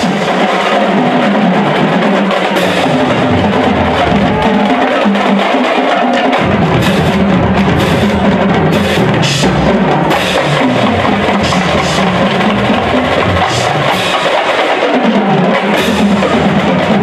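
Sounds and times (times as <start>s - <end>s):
drums and percussion: 0.0s - 17.0s
marching band playing: 0.0s - 17.0s.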